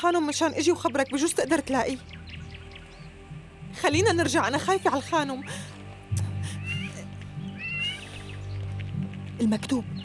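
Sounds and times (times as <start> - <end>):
background music with low drone: 0.0 - 10.0
high wavering calls: 6.6 - 8.6.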